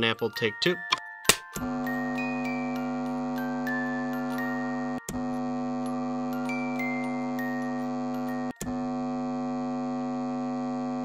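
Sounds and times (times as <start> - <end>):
higher electronic notes: 1.6 - 9.8
electronic drone chord: 1.6 - 11.0.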